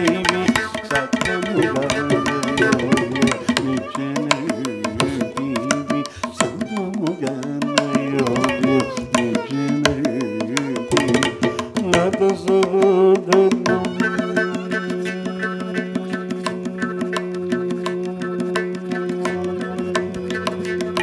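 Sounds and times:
fast drum strokes: 0.0s - 21.0s.

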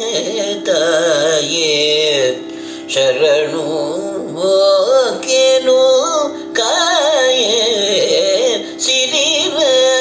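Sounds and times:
man singing ornamented melody: 0.0s - 10.0s.

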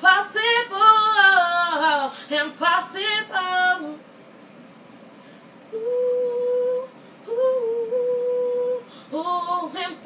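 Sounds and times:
girl singing a cappella: 0.0s - 4.1s, 5.7s - 10.0s.

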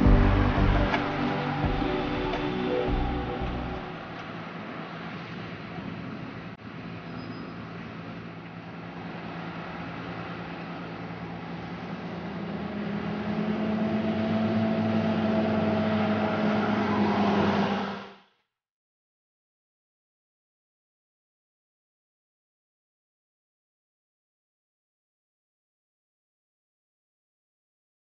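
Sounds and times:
bus driving past humming: 0.0s - 18.4s.

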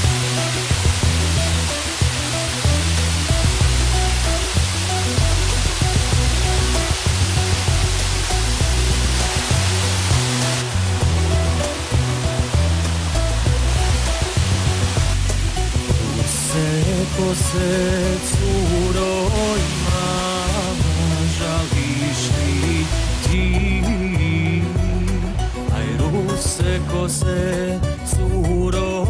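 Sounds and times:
waterfall rushing over rocks: 0.0s - 27.7s
background music with bass line: 0.0s - 29.0s.

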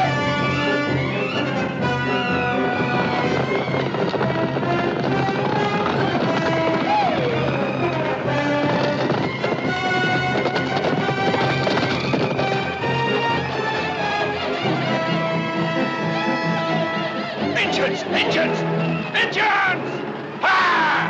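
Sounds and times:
orchestral music with brass and strings: 0.0s - 21.0s.

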